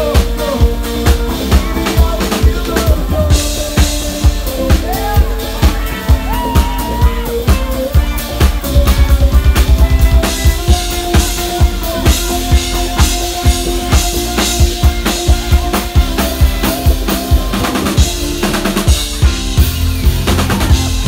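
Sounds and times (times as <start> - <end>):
drum kit beat: 0.0 - 21.0
held guitar and bass notes: 0.0 - 21.0.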